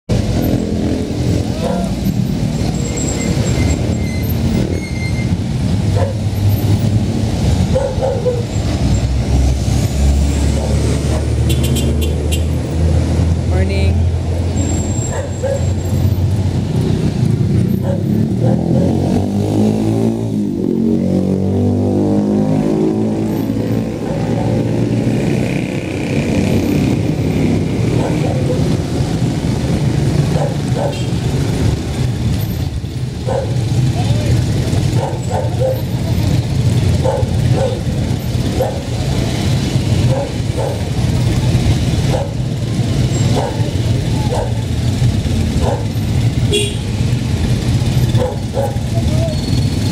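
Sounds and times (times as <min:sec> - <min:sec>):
people's voices: 0:48.6 - 0:49.6.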